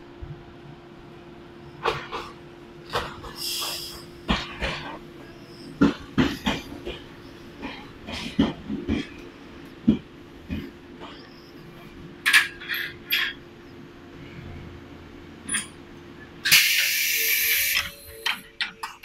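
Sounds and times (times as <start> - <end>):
wheels clacking over rail joints: 5.8 - 11.2.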